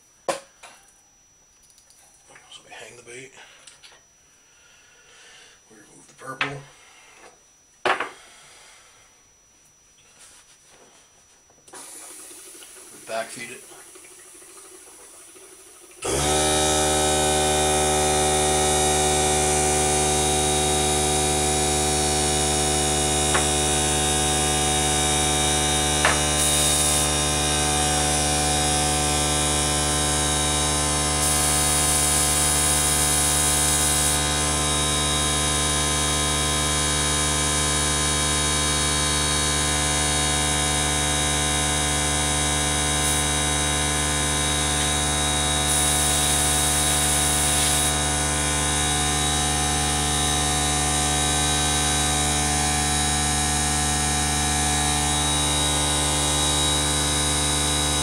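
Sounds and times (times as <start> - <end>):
air compressor humming: 10.0 - 58.0
airbrush air hisses: 11.7 - 13.9.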